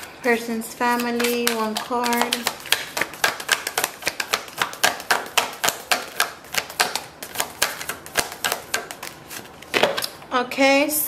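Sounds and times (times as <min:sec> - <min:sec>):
cards being shuffled by hand: 0:00.8 - 0:10.2.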